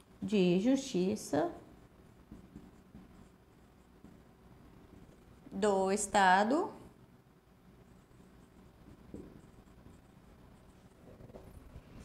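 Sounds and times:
marker scratching on a whiteboard: 1.3 - 4.3, 7.8 - 12.0.

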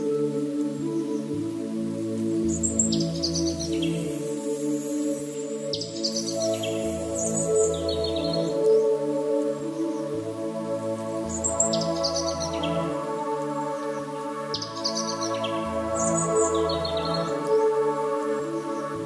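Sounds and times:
calm ambient music: 0.0 - 19.0
bird chirps: 2.4 - 10.2, 11.2 - 19.0.

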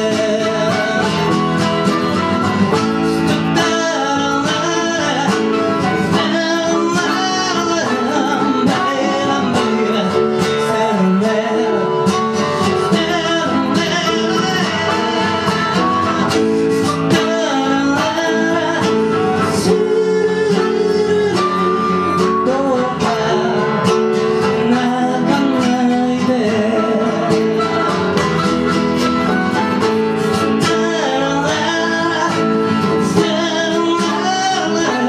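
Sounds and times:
harmonica playing: 0.0 - 24.8, 26.7 - 35.0
acoustic guitar strumming: 0.0 - 35.0.

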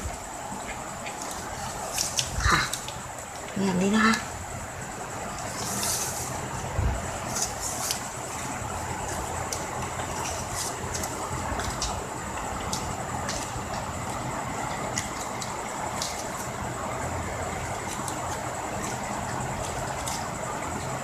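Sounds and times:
steady background noise: 0.0 - 21.0
ribbon rustling and crinkling: 5.2 - 16.6.

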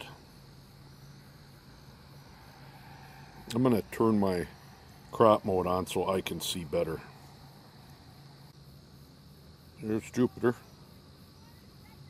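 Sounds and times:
man speaking: 3.5 - 7.2, 9.8 - 10.7.

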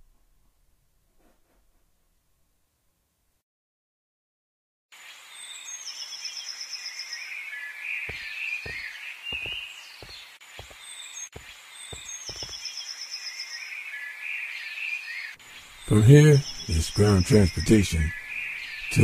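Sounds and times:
bird chirps: 5.3 - 19.0
soft low thumps: 8.1 - 10.8, 11.4 - 12.6.

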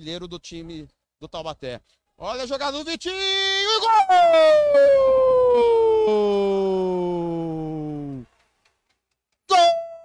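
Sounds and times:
commentator shouting goal: 3.2 - 8.2, 9.5 - 10.0.

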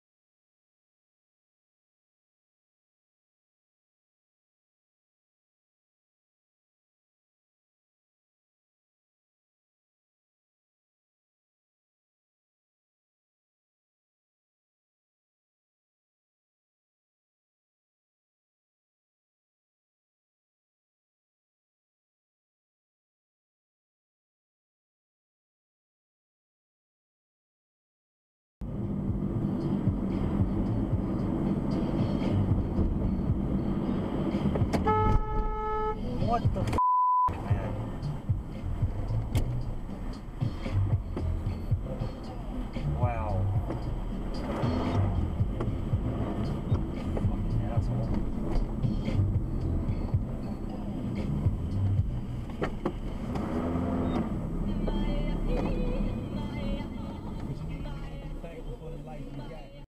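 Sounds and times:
car road noise: 28.6 - 59.9
car horn honking: 34.7 - 37.3
censor bleep: 36.8 - 37.4.

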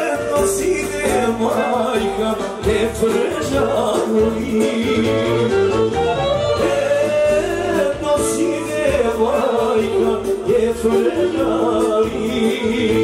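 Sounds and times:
man singing into a microphone: 0.0 - 5.8, 6.5 - 13.0
accordion-led band music: 0.0 - 13.0.

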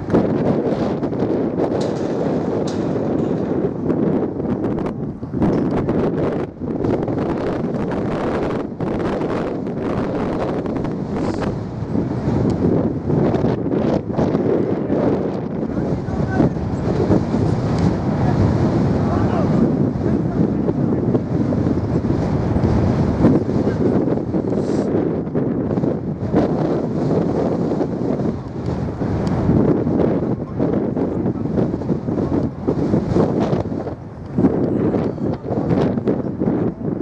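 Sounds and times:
wind buffeting microphone: 0.0 - 37.0
distant voices: 14.6 - 24.5.

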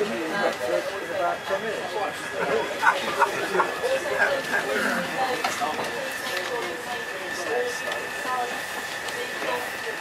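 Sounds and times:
passengers talking: 0.0 - 10.0
train running noise: 0.0 - 10.0.

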